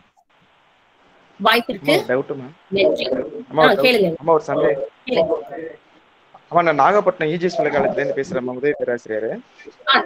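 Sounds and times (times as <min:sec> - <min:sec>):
person talking over video call: 0:01.4 - 0:05.8, 0:06.4 - 0:10.0.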